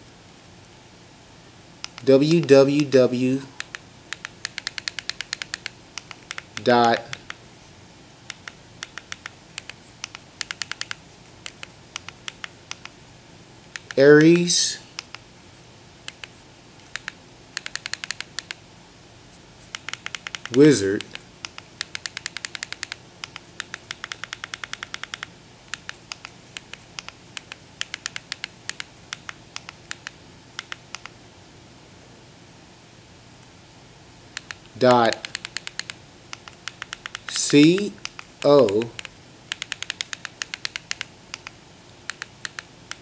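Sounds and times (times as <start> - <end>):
remote control keyboard clicks: 1.8 - 3.0, 3.6 - 7.4, 8.3 - 13.0, 13.7 - 14.0, 16.1 - 18.6, 19.7 - 31.2, 34.3 - 43.0.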